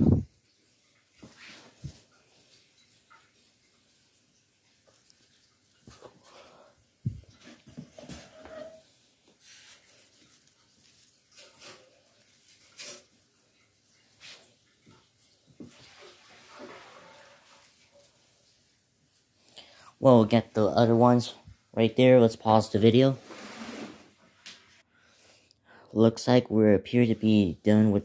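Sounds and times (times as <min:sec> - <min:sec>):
artificial tree branches rustling: 0:01.0 - 0:24.8.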